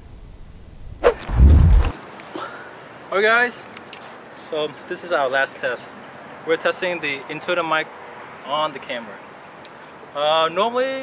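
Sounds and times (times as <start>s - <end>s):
microphone handling rumble: 0.9s - 2.0s.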